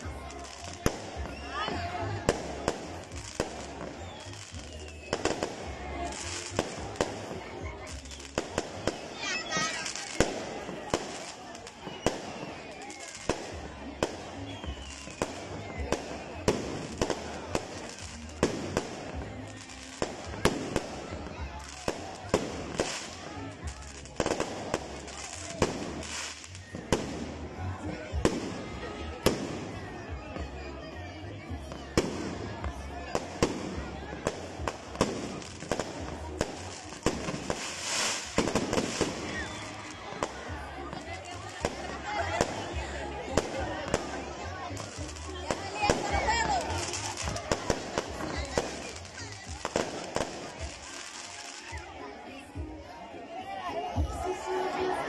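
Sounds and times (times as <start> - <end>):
fireworks crackling: 0.0 - 52.8.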